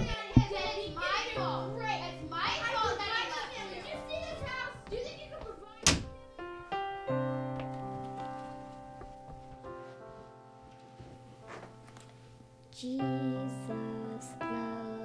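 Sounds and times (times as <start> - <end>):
indistinct voices: 0.0 - 6.2
soft background music: 0.0 - 15.0
door slamming: 5.8 - 6.3.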